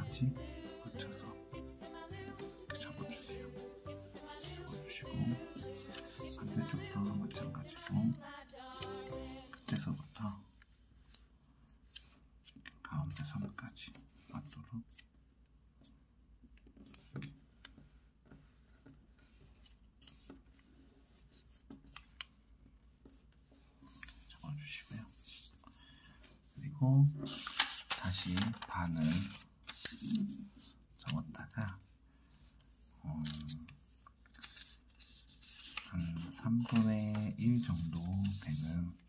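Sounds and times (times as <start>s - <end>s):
paper rustling and crinkling: 5.2s - 8.1s, 23.7s - 31.8s, 32.5s - 38.8s.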